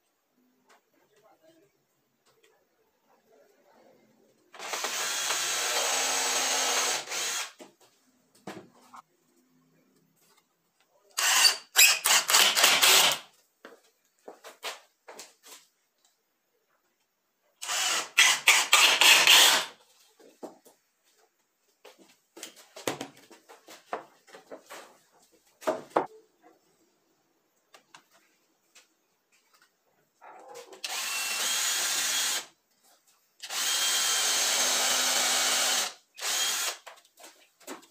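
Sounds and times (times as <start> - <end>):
cordless drill running: 4.6 - 7.6, 11.2 - 13.3, 17.6 - 19.7, 30.8 - 32.5, 33.4 - 36.8.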